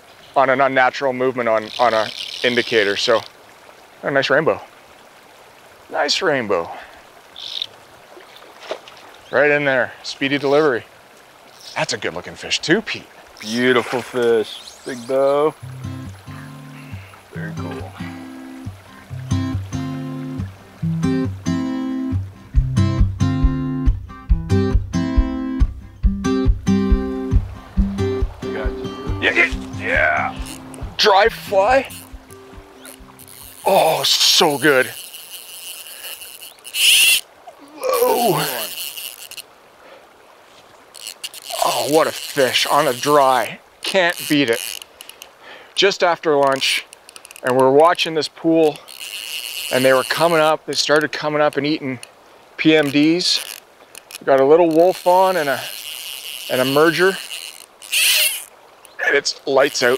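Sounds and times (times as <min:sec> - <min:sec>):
river water washing: 0:00.0 - 0:24.2, 0:25.9 - 0:59.9
fishing reel drag buzzing: 0:01.4 - 0:03.4, 0:07.3 - 0:07.7, 0:13.3 - 0:19.2, 0:28.5 - 0:39.6, 0:40.8 - 0:45.4, 0:46.5 - 0:47.5, 0:48.6 - 0:59.9
fish splashing in water: 0:13.2 - 0:15.2, 0:29.5 - 0:45.7.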